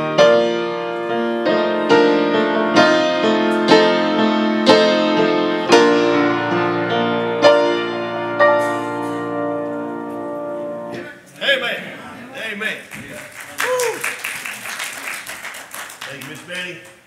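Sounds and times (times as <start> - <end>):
slow solo grand piano: 0.0 - 11.0.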